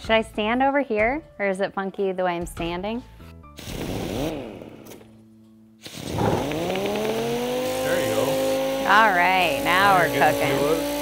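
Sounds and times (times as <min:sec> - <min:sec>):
electric orbital sander whining: 0:06.0 - 0:11.0.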